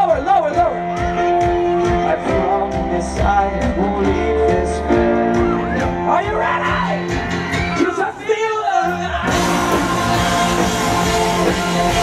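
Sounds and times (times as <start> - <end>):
bass guitar: 0.0 - 8.1, 8.8 - 12.0
guitars: 0.0 - 12.0
person singing: 0.9 - 7.1, 8.1 - 12.0
drums with cymbal hits: 8.9 - 12.0.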